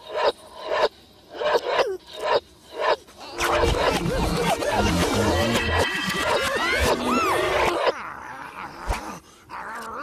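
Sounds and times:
wordless gliding vocal sounds: 3.1s - 7.9s
cartoon music: 3.4s - 7.8s.

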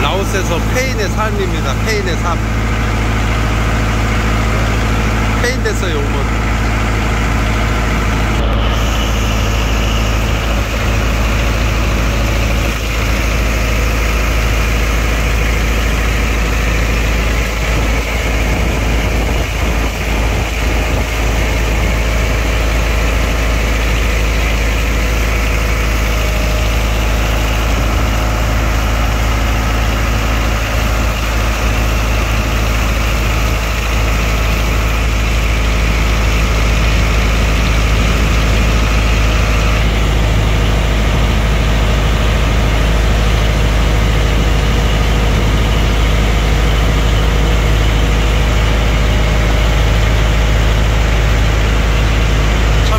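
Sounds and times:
boat engine rumbling: 0.0s - 52.9s.

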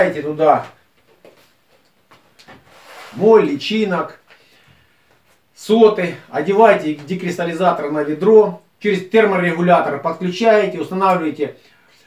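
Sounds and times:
faint rustling: 0.5s - 3.4s.

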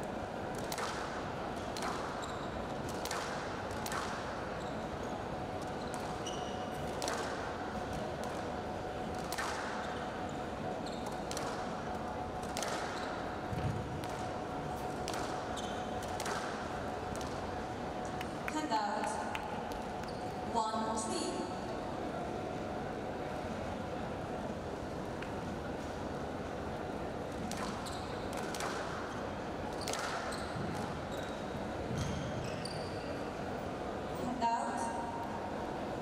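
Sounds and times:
court shoes squeaking: 1.8s - 3.2s, 3.8s - 7.3s, 10.8s - 11.6s, 12.6s - 14.2s, 14.8s - 16.5s, 20.0s - 20.4s, 27.5s - 33.6s.

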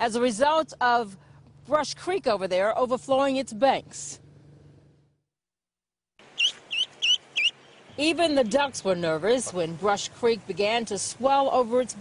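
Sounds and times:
duckling peeping: 6.3s - 7.9s.

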